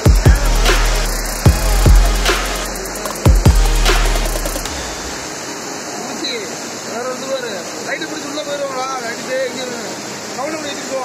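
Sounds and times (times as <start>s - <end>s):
water rushing along canal: 0.0s - 11.0s
waterfall splashing: 0.0s - 11.0s.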